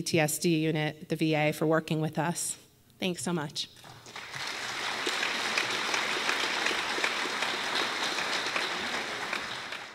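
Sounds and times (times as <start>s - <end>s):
audience applauding: 3.8s - 9.9s.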